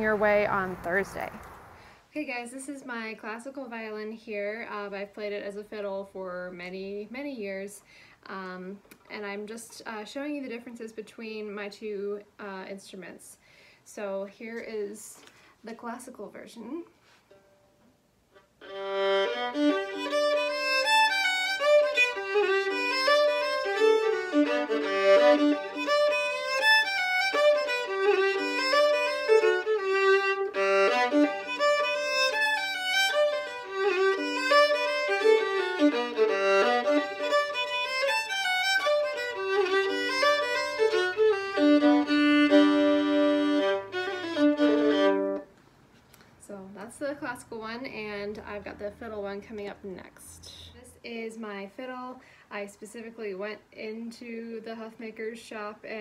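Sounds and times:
solo violin bowed tune: 18.6s - 45.5s.

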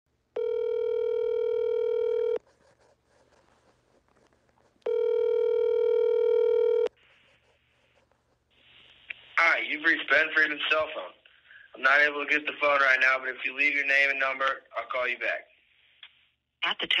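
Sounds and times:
telephone ringback tone: 0.4s - 2.4s, 4.9s - 6.9s.

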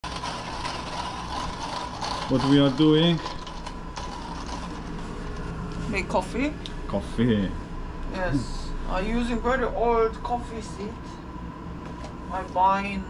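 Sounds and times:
hand coffee grinder grinding: 0.0s - 5.4s.

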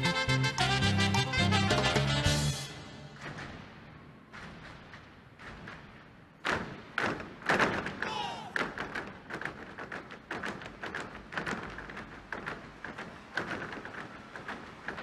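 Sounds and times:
person shouting: 8.0s - 8.6s.

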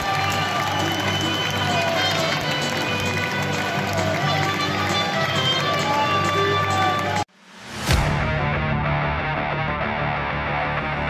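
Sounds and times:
stadium crowd din: 0.0s - 7.3s
music: 0.0s - 11.0s.

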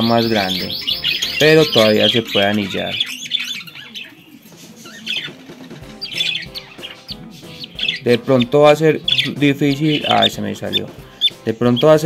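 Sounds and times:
budgerigar chick cheeping: 0.0s - 11.9s.

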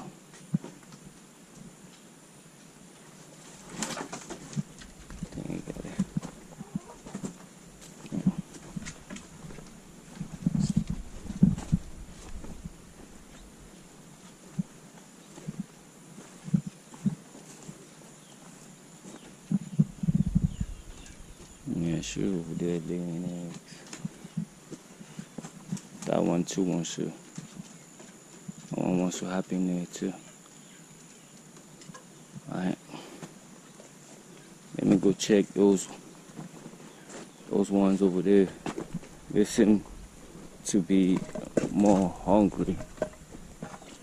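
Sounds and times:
chickens clucking: 3.7s - 7.4s, 37.6s - 44.0s
knocks and low thumps: 8.1s - 13.6s, 19.5s - 21.7s.

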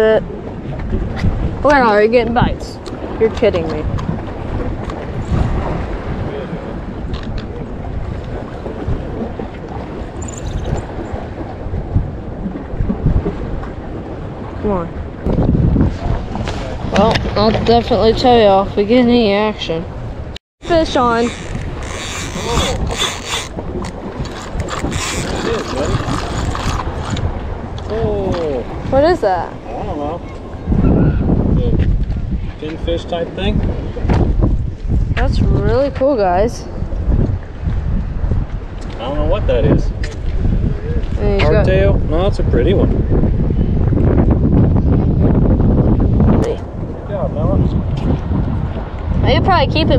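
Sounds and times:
sea water washing: 0.0s - 49.9s
wind gusting over microphone: 0.0s - 49.9s.

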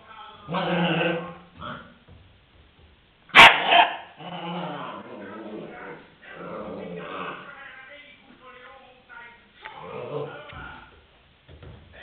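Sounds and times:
puppy barking: 3.3s - 4.2s
puppy growling and yapping: 3.4s - 5.8s.

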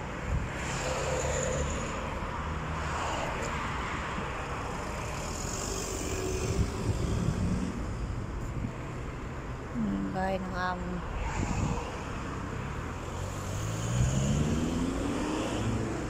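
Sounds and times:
road traffic rumble: 0.0s - 16.0s.

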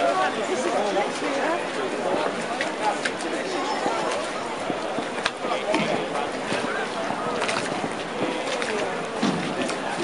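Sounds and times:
boat moving on water: 0.0s - 10.0s
indistinct voices: 0.0s - 10.0s.

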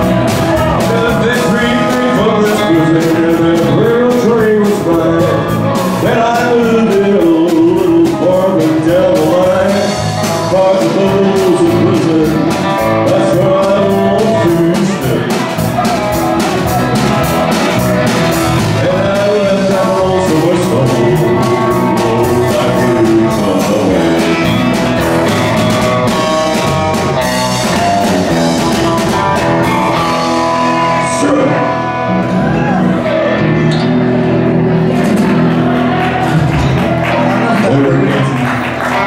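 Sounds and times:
drums: 0.0s - 39.0s
electric guitar bending notes: 0.0s - 39.0s
live rock band playing: 0.0s - 39.0s.

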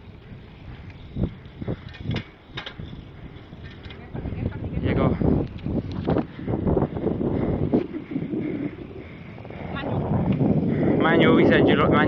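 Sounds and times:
bicycle knocks and rattles: 0.0s - 7.0s.

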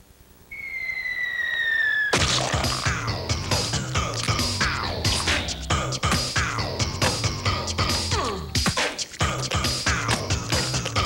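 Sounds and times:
cartoon falling whistle: 0.5s - 2.3s.

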